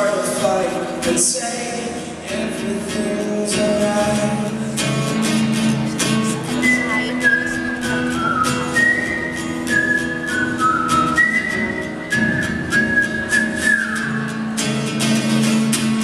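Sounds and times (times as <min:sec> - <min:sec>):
strummed acoustic guitar: 0:00.0 - 0:16.0
man whistling a melody: 0:06.5 - 0:14.6.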